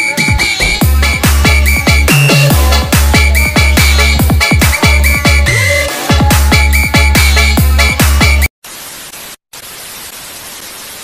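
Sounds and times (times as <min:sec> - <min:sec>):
tv static hiss: 0:08.6 - 0:11.0.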